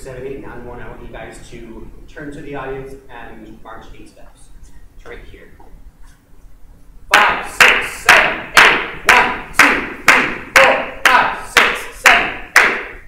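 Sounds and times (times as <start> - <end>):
hand claps: 7.2 - 13.0.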